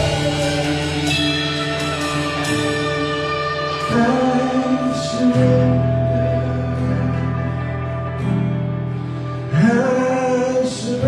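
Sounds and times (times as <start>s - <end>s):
singing: 0.0s - 8.3s, 9.5s - 11.0s
guitars holding chords: 0.0s - 11.0s.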